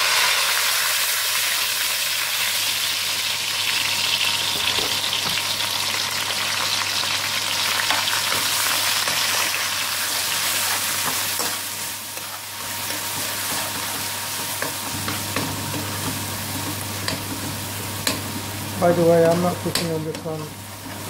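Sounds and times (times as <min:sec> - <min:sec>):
ginger and garlic sizzling in ghee: 0:00.0 - 0:21.0.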